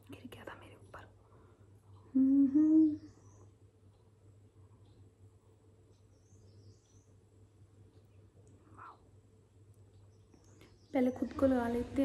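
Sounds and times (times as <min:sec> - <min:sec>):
woman humming: 0:02.1 - 0:03.1.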